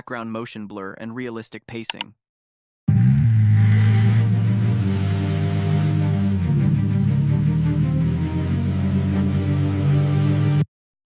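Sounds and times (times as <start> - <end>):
loud low drone with hiss: 2.9 - 10.6.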